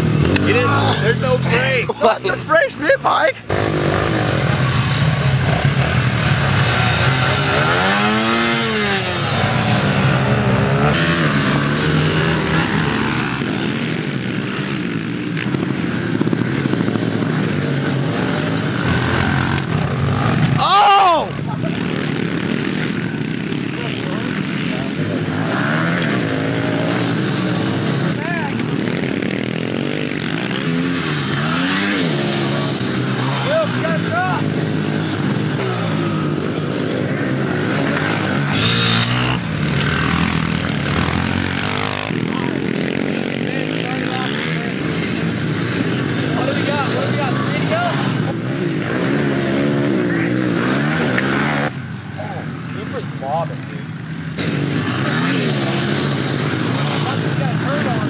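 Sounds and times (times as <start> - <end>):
pit bikes revving and racing past: 0.0 - 58.0.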